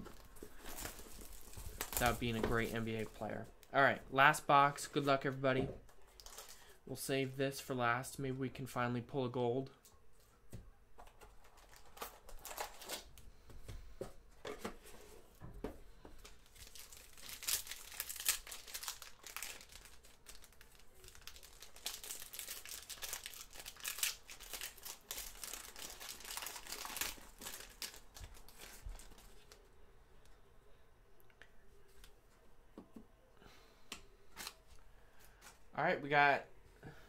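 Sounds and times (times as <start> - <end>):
foil pack crinkling and tearing: 0.1 - 3.1, 11.4 - 13.2, 16.3 - 29.6.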